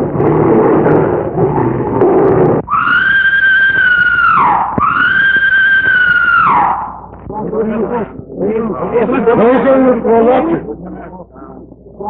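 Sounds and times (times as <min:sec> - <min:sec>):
loud rough noise: 0:00.0 - 0:07.6
high-pitched scream: 0:02.6 - 0:07.1.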